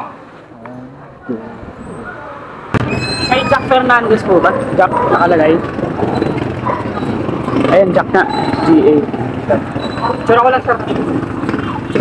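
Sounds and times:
street background noise: 0:00.0 - 0:12.0
voices: 0:00.0 - 0:12.0
loud thump: 0:02.7 - 0:03.1.

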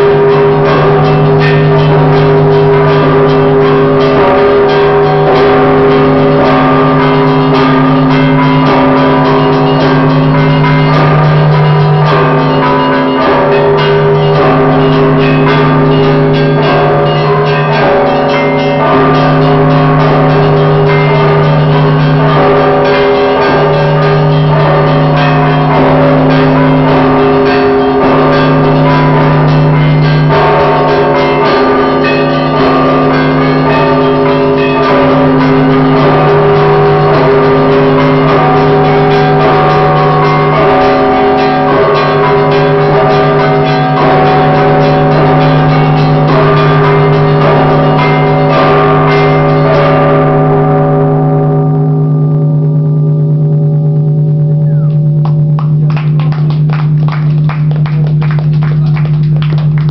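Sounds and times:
small bells clanging fast: 0:00.0 - 0:52.2, 0:54.3 - 0:59.9
large bells humming: 0:00.0 - 0:59.9.

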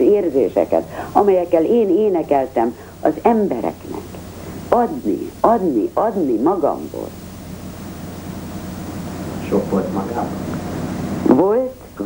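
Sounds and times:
film soundtrack hiss: 0:00.0 - 0:12.0
low mains hum: 0:00.0 - 0:12.0.

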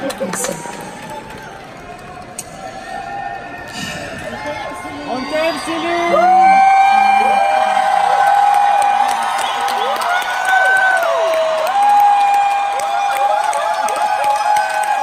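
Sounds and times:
audience cheering and screaming: 0:00.0 - 0:15.0
scattered clapping: 0:08.0 - 0:15.0.

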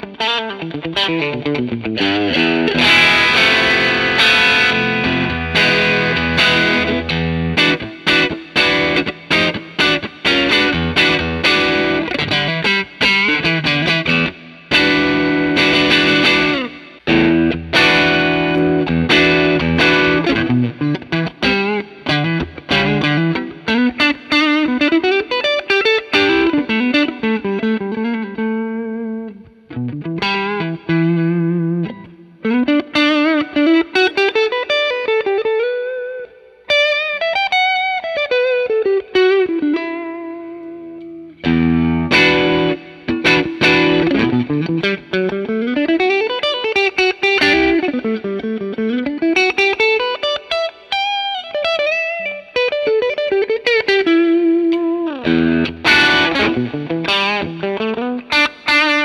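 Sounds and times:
overdriven electric guitar lead: 0:00.0 - 0:59.0
strummed guitar chord: 0:00.6 - 0:24.0.

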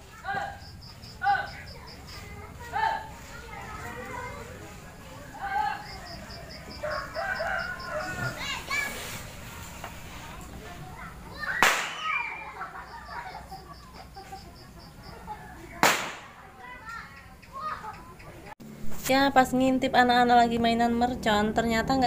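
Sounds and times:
children's voices: 0:00.0 - 0:18.6
firecracker bangs: 0:11.6 - 0:12.2, 0:15.8 - 0:16.4.

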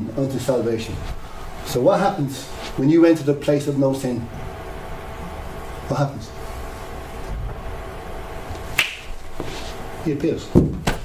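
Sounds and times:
low room hum: 0:00.0 - 0:11.0
sharp click: 0:08.8 - 0:09.1.

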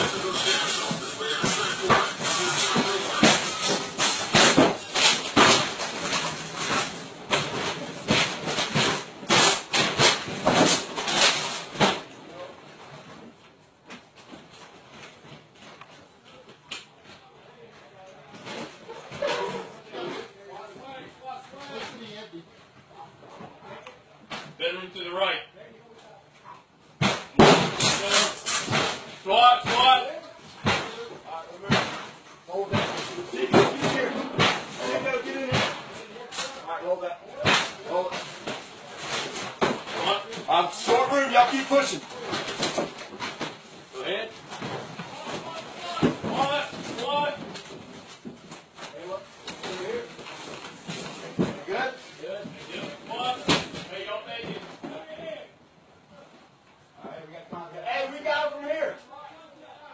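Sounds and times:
raised voices: 0:00.0 - 0:04.3
door crashing: 0:00.0 - 0:12.1, 0:27.0 - 0:30.0, 0:44.6 - 0:47.7
sharp knocks and bangs: 0:00.0 - 0:12.1, 0:27.0 - 0:30.0, 0:30.6 - 0:36.6, 0:37.4 - 0:43.8.

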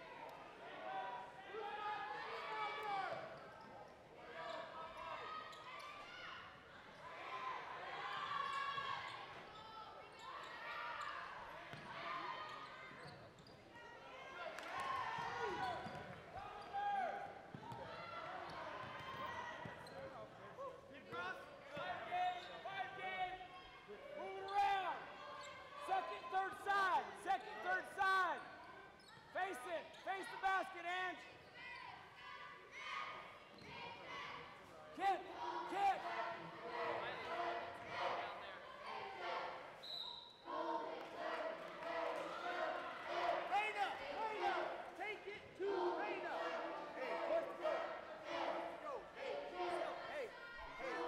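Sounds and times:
sneakers squeaking: 0:08.5 - 0:14.0, 0:15.2 - 0:16.8, 0:17.4 - 0:20.4, 0:28.5 - 0:30.4, 0:33.5 - 0:34.0.

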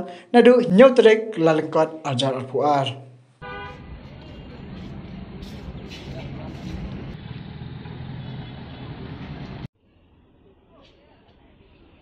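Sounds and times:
vehicle engines running: 0:03.7 - 0:09.7
voices of passers-by: 0:03.7 - 0:12.0.

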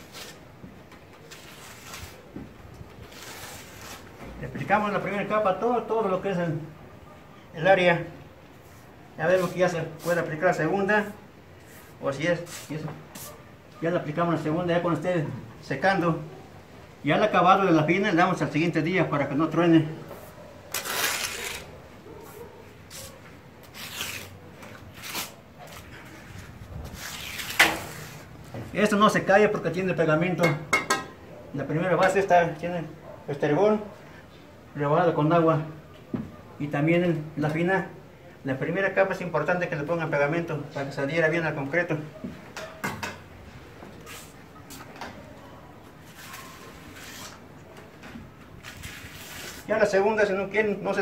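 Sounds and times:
trowel scraping mortar: 0:01.3 - 0:02.2, 0:03.1 - 0:04.1
metal trowel scraping plaster: 0:27.0 - 0:28.3.

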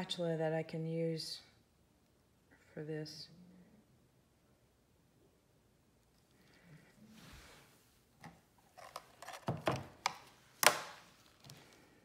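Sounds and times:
plastic clicks and knocks: 0:08.2 - 0:11.6.

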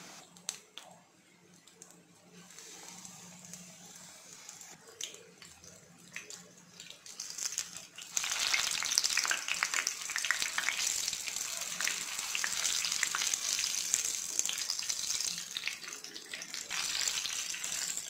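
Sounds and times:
battered chillies deep-frying in oil: 0:00.0 - 0:18.0.

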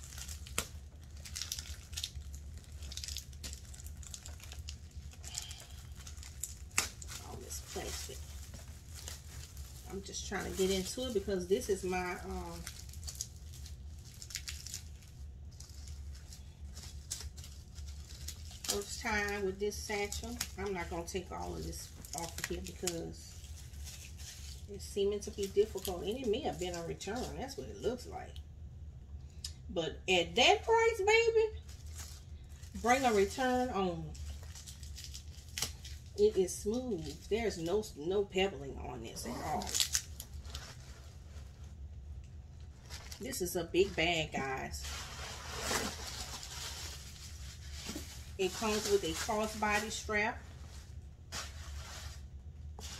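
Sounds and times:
plastic wrap crinkling: 0:00.0 - 0:28.3, 0:30.6 - 0:52.9
faint low hum: 0:00.0 - 0:52.9.

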